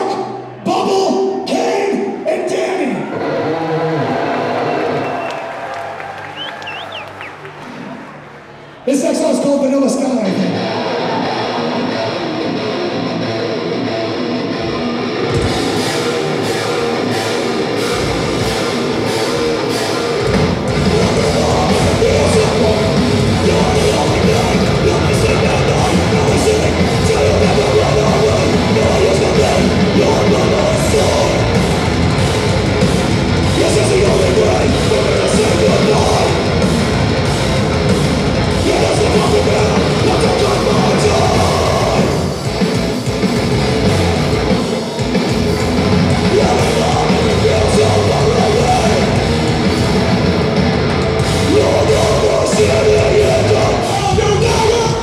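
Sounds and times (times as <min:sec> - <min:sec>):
heavy distorted guitars: 0:00.0 - 0:05.3, 0:07.4 - 0:55.0.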